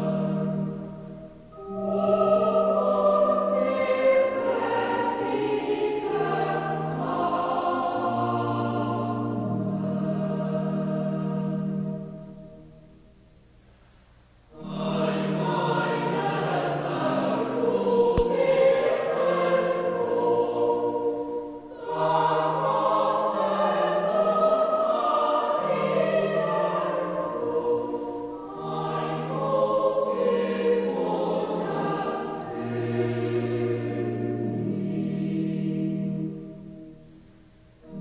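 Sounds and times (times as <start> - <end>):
choir singing a carol: 0.0 - 13.3, 14.4 - 38.0.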